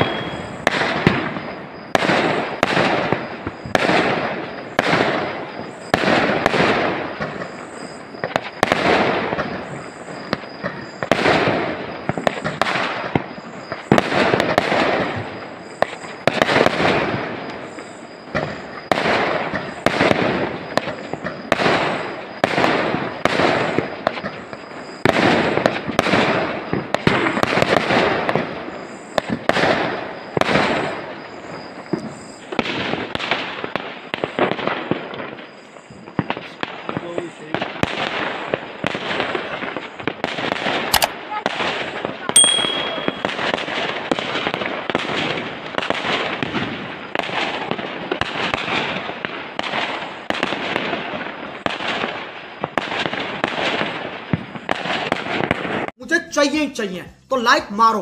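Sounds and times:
fireworks bursting with sharp bangs: 0.0s - 58.0s
fireworks crackling: 0.0s - 58.0s.

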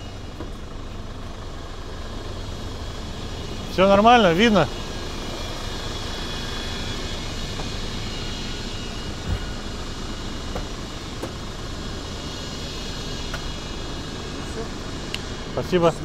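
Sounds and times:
diesel truck engine idling: 0.0s - 16.0s.

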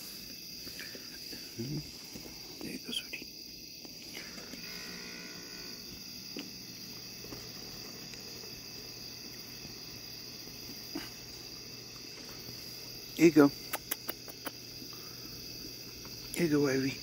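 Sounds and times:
insect chorus trilling: 0.0s - 17.0s
low steady hum: 3.9s - 16.5s.

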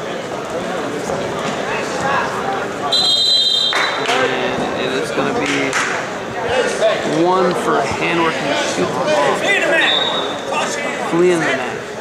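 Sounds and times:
voices chattering in a hall: 0.0s - 12.0s
referee whistle blast: 2.9s - 4.0s, 9.8s - 10.5s.

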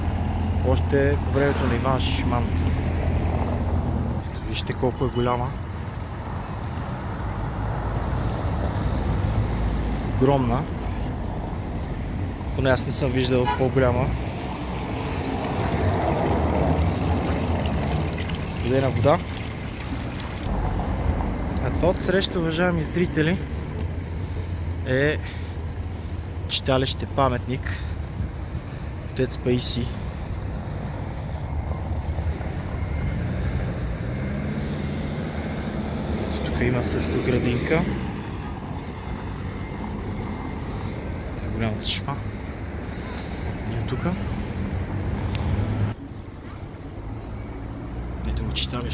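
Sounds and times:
passing traffic rumble: 0.0s - 48.9s
fountain water splashing: 14.6s - 20.5s.

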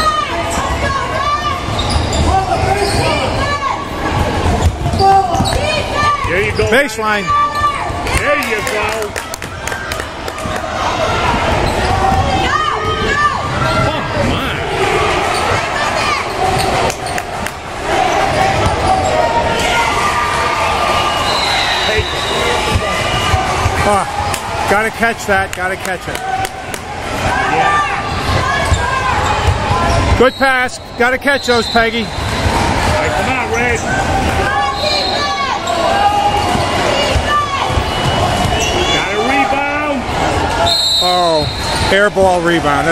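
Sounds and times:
voices of players and spectators: 0.0s - 42.9s
sneakers squeaking: 0.1s - 8.1s, 11.3s - 13.9s, 15.2s - 19.7s, 28.0s - 39.4s
sneakers squeaking on court: 1.6s - 3.2s, 4.6s - 7.8s, 34.8s - 39.2s.

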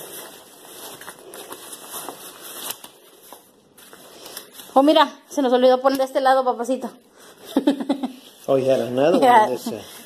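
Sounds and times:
fabric rustling: 0.0s - 5.1s.

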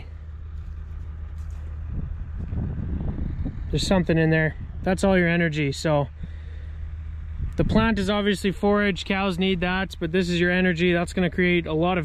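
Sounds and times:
low engine hum: 0.0s - 12.0s
barley head rustling and crackling: 0.3s - 2.6s.

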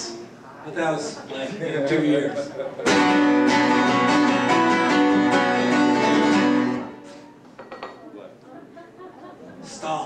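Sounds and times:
acoustic guitar strumming: 2.8s - 7.5s.

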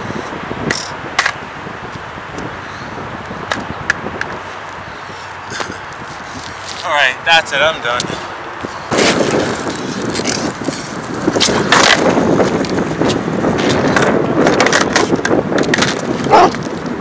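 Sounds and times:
skateboard wheels rolling on asphalt: 0.0s - 17.0s
skateboard clacking on pavement: 0.6s - 1.4s, 8.9s - 16.7s.

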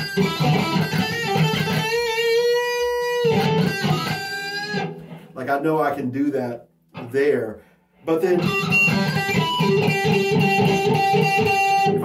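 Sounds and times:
electric guitar harmonics: 0.0s - 5.4s, 8.2s - 12.0s.

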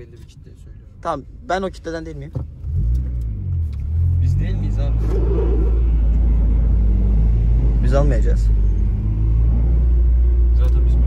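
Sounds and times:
car engine low rumble from inside: 0.0s - 11.0s.

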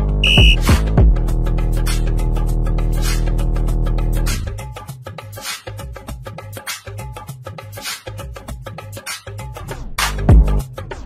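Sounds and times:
workout music with heavy beat: 0.0s - 1.3s, 7.6s - 10.7s
short high electronic beep: 0.2s - 0.7s.

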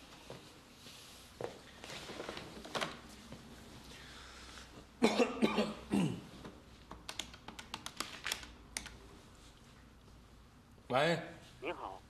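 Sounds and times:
man coughing: 5.0s - 6.2s.

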